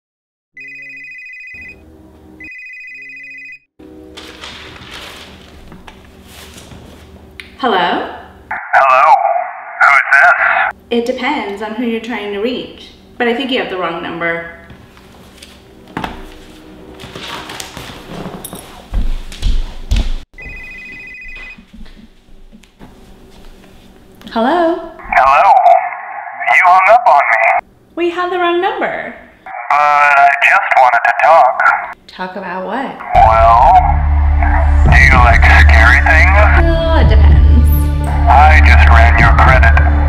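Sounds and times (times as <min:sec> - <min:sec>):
phone ringing with trilling bell: 0:00.6 - 0:01.8, 0:02.4 - 0:03.7, 0:20.4 - 0:21.6.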